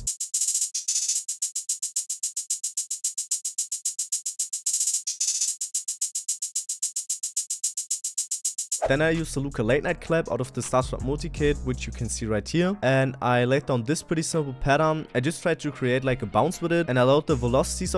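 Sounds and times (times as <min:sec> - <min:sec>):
drum machine hi-hat pattern: 0:00.0 - 0:09.3.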